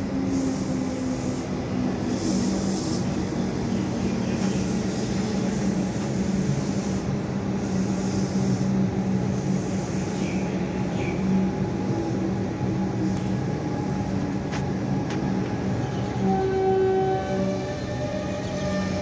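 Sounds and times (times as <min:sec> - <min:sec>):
electric train humming: 0:00.0 - 0:19.0.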